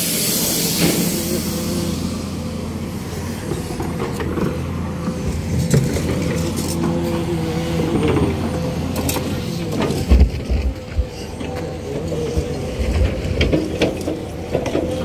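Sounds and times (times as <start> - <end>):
higher engine tone: 0.0 - 14.9
excavator diesel engine running: 0.0 - 15.0.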